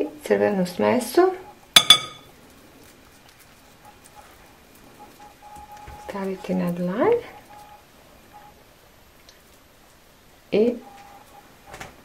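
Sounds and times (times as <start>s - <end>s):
hands pressing dough: 1.8s - 2.2s
metal spoon clinking glass bowl: 1.8s - 2.3s.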